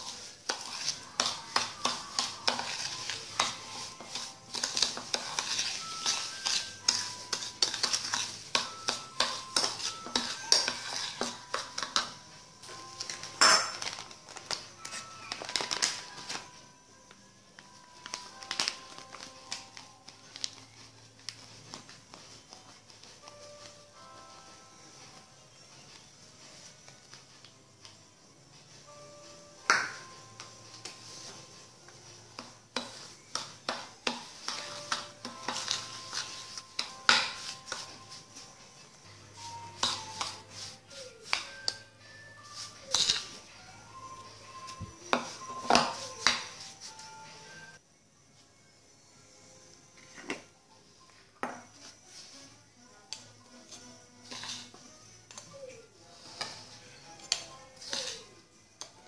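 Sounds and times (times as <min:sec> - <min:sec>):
soft background music: 0:00.0 - 0:59.0
metal spoon clinking in ceramic bowl: 0:42.9 - 0:43.3.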